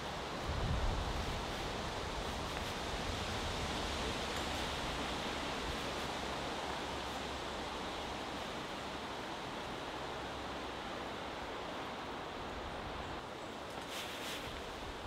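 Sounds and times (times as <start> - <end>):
wind through trees: 0.0 - 15.0
faint rustles: 13.6 - 15.0.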